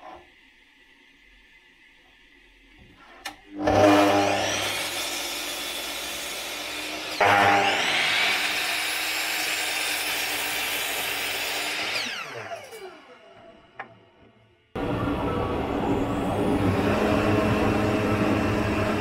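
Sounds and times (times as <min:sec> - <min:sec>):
saw blade cutting wood: 0:03.6 - 0:13.2
mitre saw motor whine: 0:14.8 - 0:19.0.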